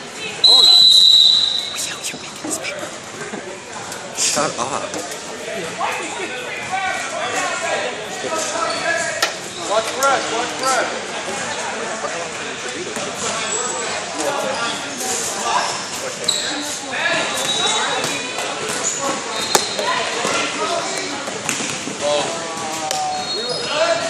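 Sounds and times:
voices echoing in gym: 0:00.0 - 0:24.0
shoe squeaks: 0:15.6 - 0:18.0, 0:19.3 - 0:19.9, 0:23.1 - 0:23.8.

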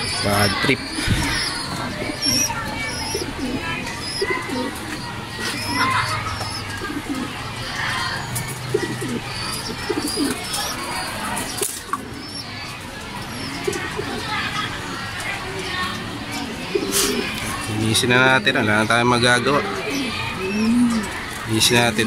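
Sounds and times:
birds chirping: 0:00.0 - 0:22.0
pigeons cooing: 0:00.0 - 0:22.0.

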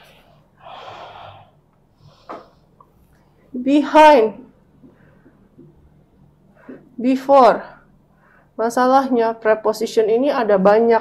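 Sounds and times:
breath: 0:00.0 - 0:02.7, 0:04.9 - 0:05.4, 0:06.5 - 0:06.9, 0:07.8 - 0:08.6.

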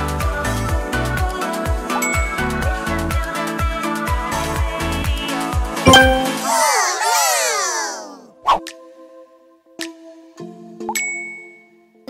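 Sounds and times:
bright chime ding: 0:05.9 - 0:06.6.

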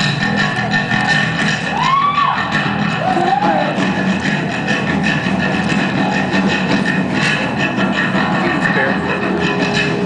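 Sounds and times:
drums: 0:00.0 - 0:10.0
loud electric guitars: 0:00.0 - 0:10.0.

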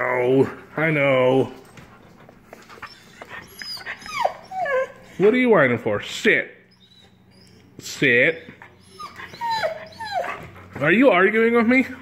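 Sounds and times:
dog whining: 0:02.6 - 0:05.2, 0:06.6 - 0:10.7.

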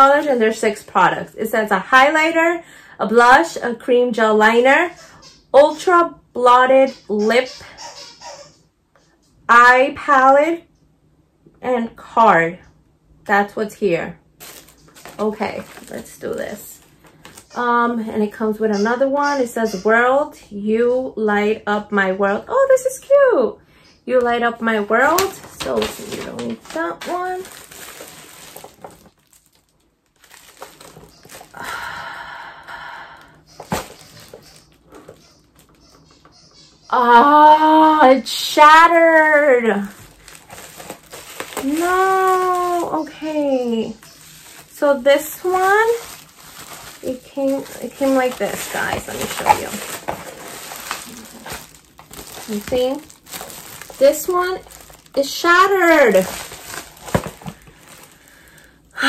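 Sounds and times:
low room noise: 0:00.0 - 0:59.0
bubble wrap crinkling: 0:14.4 - 0:18.5, 0:24.6 - 0:36.2, 0:38.4 - 0:58.9
packaging knock: 0:25.5 - 0:29.4, 0:33.6 - 0:35.2, 0:45.6 - 0:55.1, 0:56.1 - 0:58.2.

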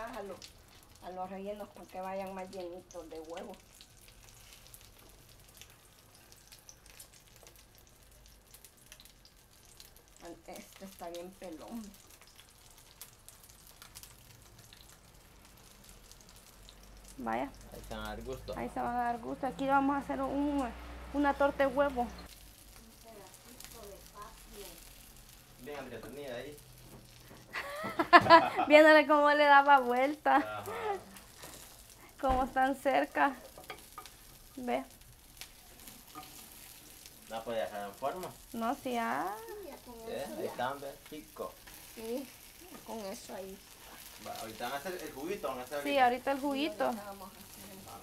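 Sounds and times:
fish sizzling in oil: 0:00.0 - 0:48.0.

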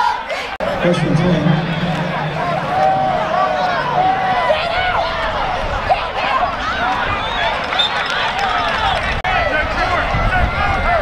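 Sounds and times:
people shouting: 0:01.6 - 0:07.6.

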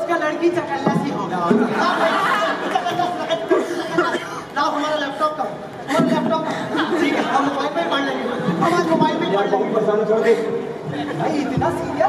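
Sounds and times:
actors delivering dialogue: 0:00.0 - 0:12.0.

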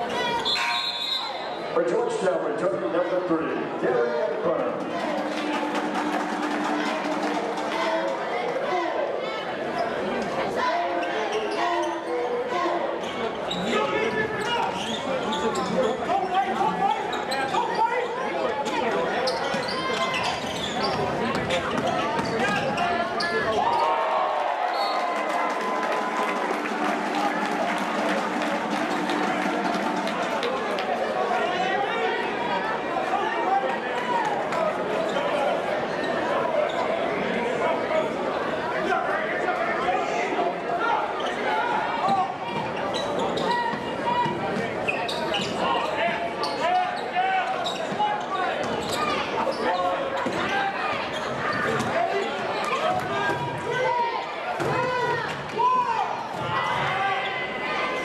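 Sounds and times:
spectators chattering: 0:00.0 - 0:58.0.

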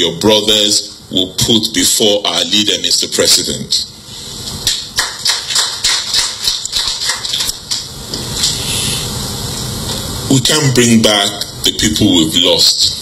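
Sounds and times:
steady high hiss: 0:00.0 - 0:13.0.

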